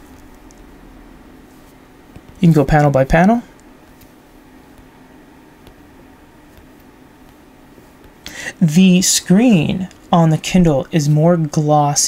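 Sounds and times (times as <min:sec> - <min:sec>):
faint hum: 0:00.0 - 0:12.0
low hiss: 0:00.0 - 0:12.0.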